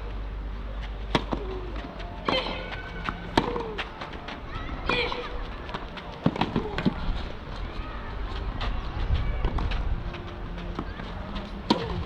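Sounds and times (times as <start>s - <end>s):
racket striking tennis ball: 1.1s - 1.6s, 2.3s - 3.9s, 6.2s - 7.0s, 11.6s - 12.0s.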